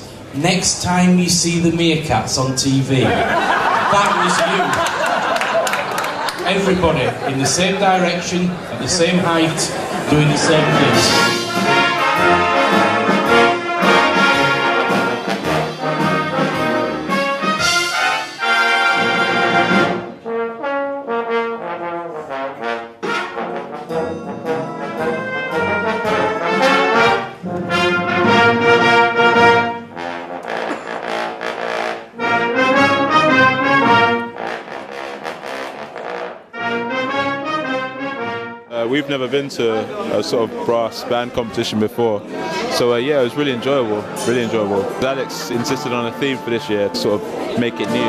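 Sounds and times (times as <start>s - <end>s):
brass band playing: 3.0s - 40.2s, 42.2s - 48.0s.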